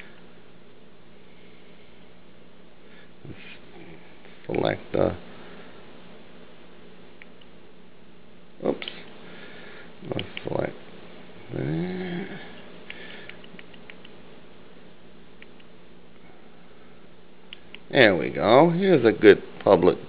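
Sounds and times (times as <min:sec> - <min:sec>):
low hum and hiss: 0:00.0 - 0:20.0.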